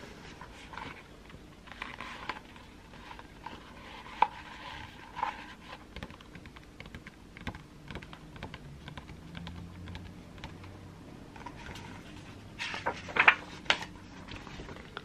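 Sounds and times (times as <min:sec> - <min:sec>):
fingernails tapping on book pages: 0:05.9 - 0:10.7
paper rustling: 0:11.4 - 0:15.0.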